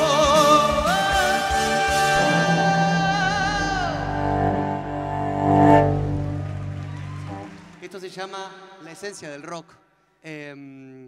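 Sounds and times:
cello bowed low note: 1.5 - 7.6.

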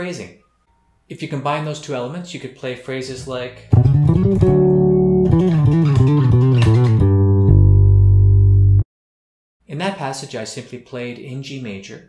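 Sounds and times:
electric bass guitar playing: 3.6 - 8.8.

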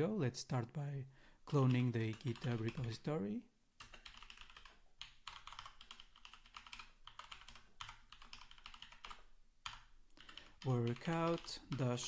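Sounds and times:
faint keyboard typing: 1.4 - 3.0, 3.8 - 12.0.

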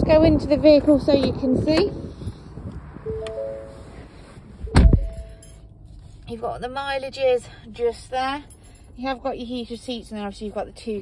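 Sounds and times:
electronic dashboard chime: 3.1 - 4.0, 4.7 - 5.7
car door shutting: 4.6 - 5.4.

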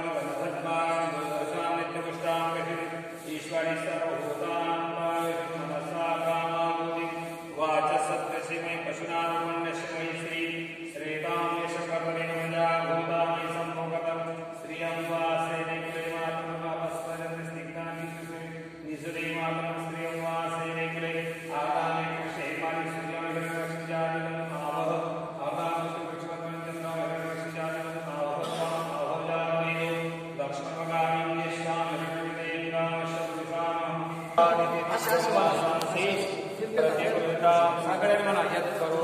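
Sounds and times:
men chanting mantras: 0.0 - 39.0.

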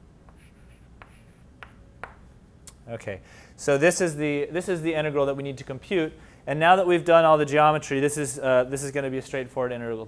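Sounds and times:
chalk tapping on board: 0.2 - 2.3
chalk scratching on blackboard: 0.3 - 2.2.

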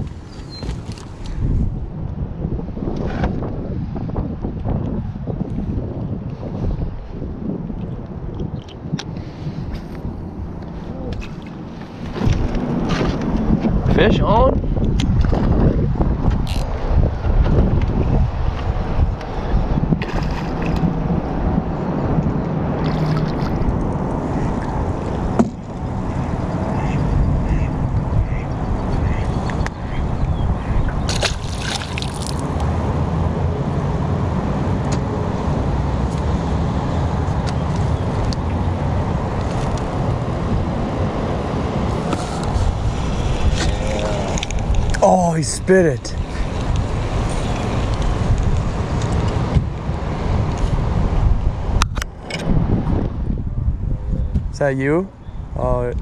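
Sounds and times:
wind rumbling on microphone: 0.0 - 56.0
water sloshing: 22.8 - 25.3, 31.0 - 32.6
fish splashing at surface: 31.1 - 32.4.

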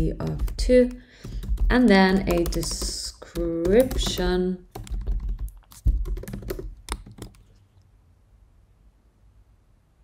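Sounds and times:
typing on computer keyboard: 0.2 - 7.5.

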